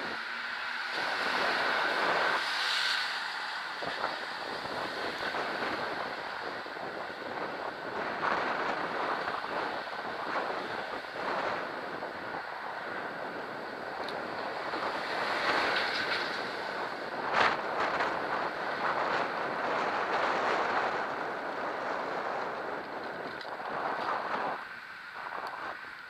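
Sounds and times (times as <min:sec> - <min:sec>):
car traffic: 0:00.0 - 0:26.0
wind rushing over microphone: 0:00.0 - 0:26.0.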